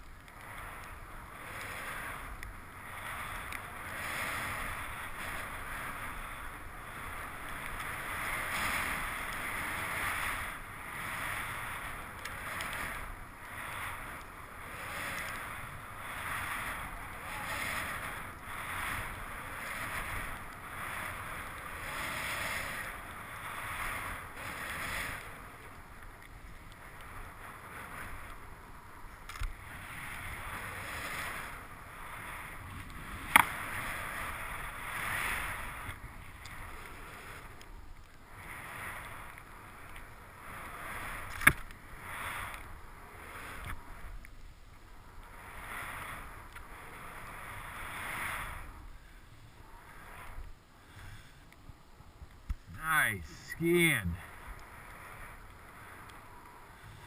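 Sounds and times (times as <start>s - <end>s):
skis hissing through powder snow: 0.2s - 57.0s.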